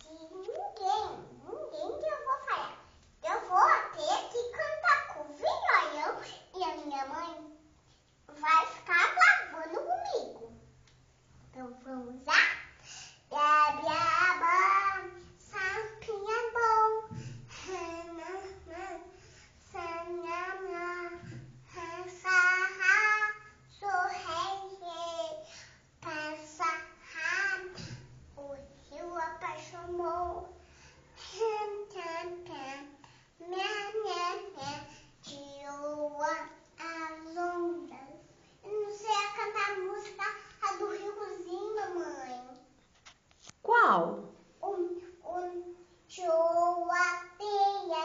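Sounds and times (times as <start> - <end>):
girl singing unaccompanied: 13.2 - 42.7, 44.6 - 48.0.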